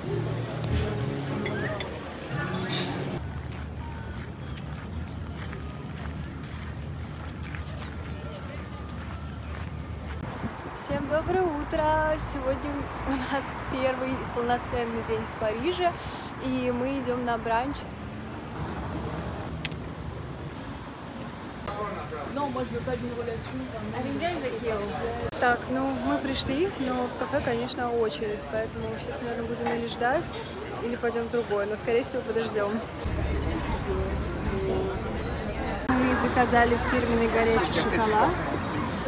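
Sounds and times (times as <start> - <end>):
rumble of passing cars: 0.0 - 39.0.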